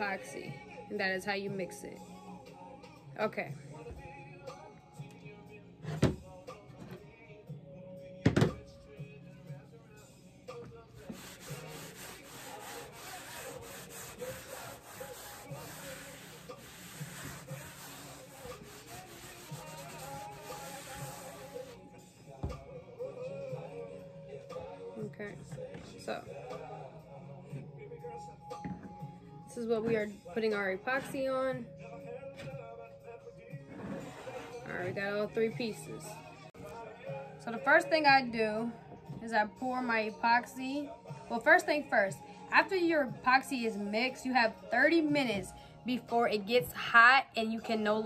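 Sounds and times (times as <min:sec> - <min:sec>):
soft background music: 0:00.0 - 0:48.0
knocks on a tabletop: 0:08.2 - 0:08.6
rubbing scraping noise: 0:11.0 - 0:21.8, 0:33.7 - 0:34.8.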